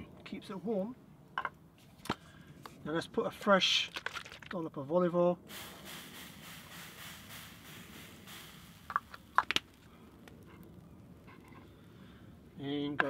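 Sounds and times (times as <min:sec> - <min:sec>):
oil spray hissing: 0:05.4 - 0:10.1.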